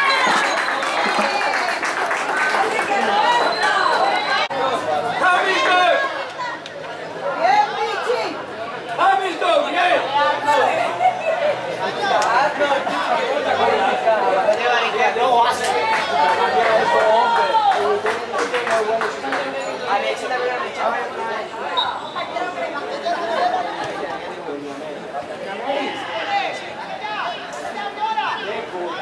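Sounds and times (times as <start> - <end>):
crowd chatter: 0.0 - 29.0.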